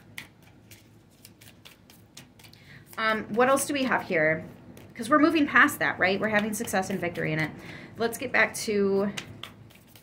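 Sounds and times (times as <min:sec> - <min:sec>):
cards clicking and rustling: 0:00.0 - 0:03.2, 0:09.0 - 0:10.0.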